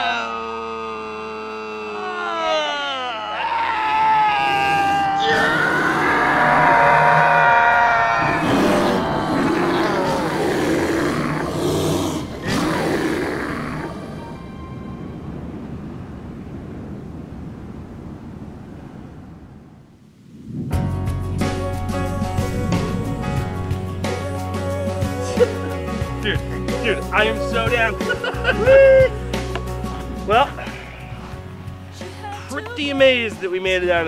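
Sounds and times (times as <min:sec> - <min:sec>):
man screaming: 0:00.0 - 0:11.5, 0:27.3 - 0:29.2
loud rough roaring: 0:03.5 - 0:14.4, 0:21.5 - 0:24.7.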